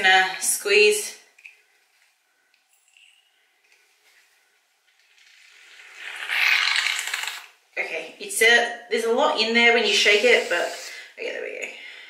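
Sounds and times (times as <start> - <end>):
aerosol can hissing foam: 10.0 - 11.1.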